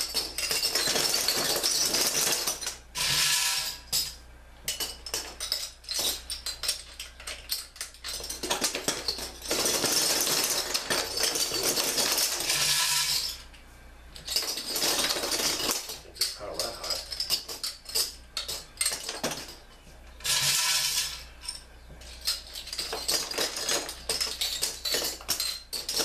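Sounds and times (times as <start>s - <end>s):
metal bottle caps clattering: 0.0s - 13.5s, 14.2s - 26.0s.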